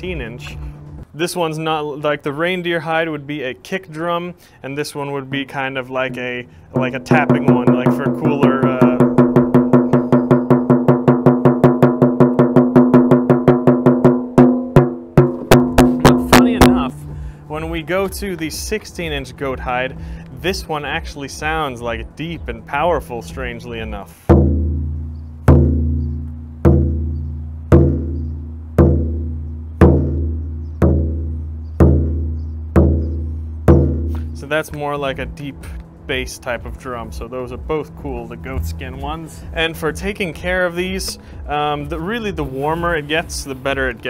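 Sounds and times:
frame drum beaten by hand: 6.7s - 17.0s, 22.4s - 34.5s, 37.1s - 43.5s.

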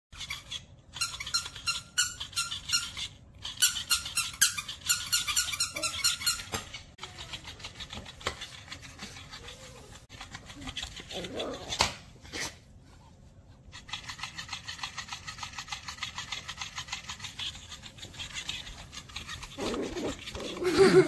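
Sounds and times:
dog toy squeaker squeaking: 0.2s - 8.0s
toy rustling: 0.2s - 21.0s.

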